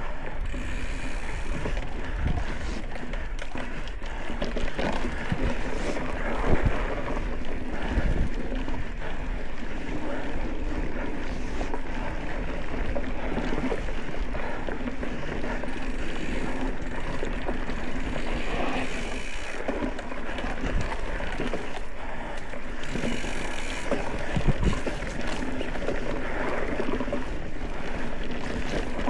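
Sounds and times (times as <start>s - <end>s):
wind noise on microphone: 0.0s - 3.1s, 4.8s - 8.8s, 24.2s - 25.4s
bike tyres rolling over dirt: 0.0s - 29.0s
bike rattling over bumps: 0.2s - 29.0s.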